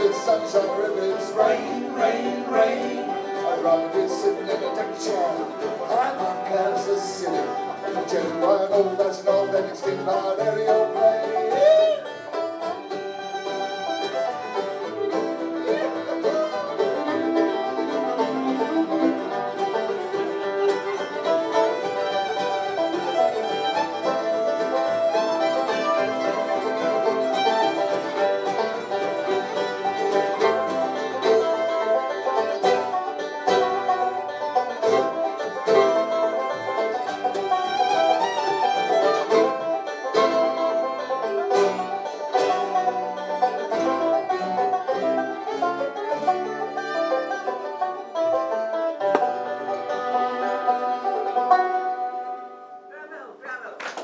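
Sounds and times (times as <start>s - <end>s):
acoustic bluegrass band playing: 0.0s - 54.0s.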